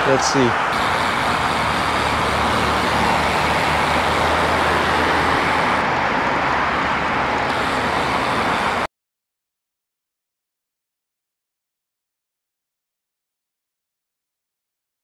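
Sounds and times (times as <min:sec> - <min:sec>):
low hum of road traffic: 0:00.0 - 0:08.9.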